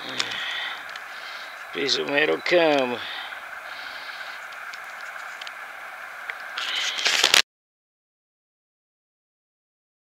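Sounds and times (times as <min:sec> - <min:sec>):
steady hiss: 0:00.0 - 0:07.4
loud scraping rustle: 0:02.9 - 0:07.4
faint ticks: 0:03.7 - 0:05.6.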